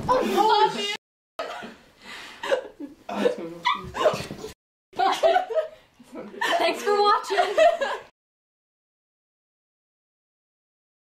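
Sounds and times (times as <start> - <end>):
women squealing and yelping: 3.6 - 4.2
women laughing: 5.0 - 8.1.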